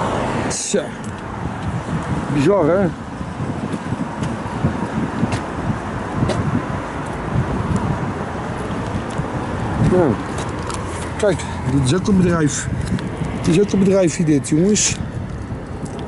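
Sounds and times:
road traffic: 0.0s - 16.0s.

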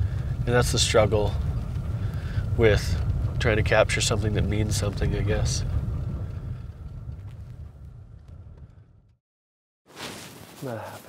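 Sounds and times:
faint ticks and rattles: 0.0s - 7.9s
vehicle rumble on dirt road: 0.0s - 9.2s.

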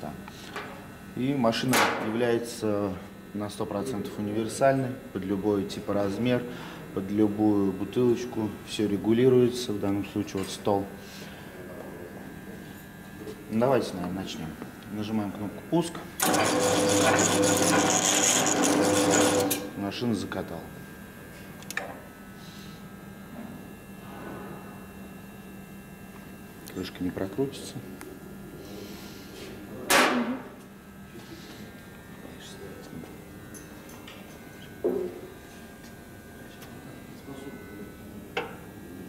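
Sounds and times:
rollers grinding rasp: 16.2s - 19.7s
capping machine whirring: 16.2s - 19.8s.

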